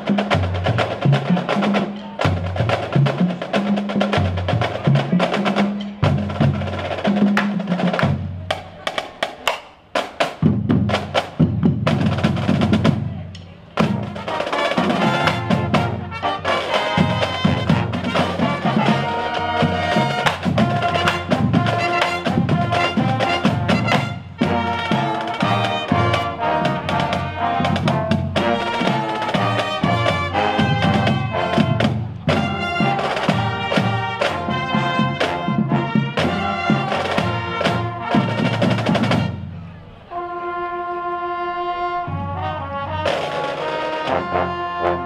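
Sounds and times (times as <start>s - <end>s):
marching snare and bass drums: 0.0s - 39.6s, 42.0s - 45.0s
brass horns: 13.8s - 45.0s.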